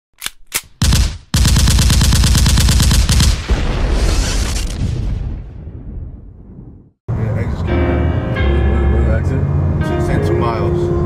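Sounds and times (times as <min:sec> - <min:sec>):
gunshots: 0:00.3 - 0:05.2
automatic gunfire volley: 0:00.5 - 0:04.7.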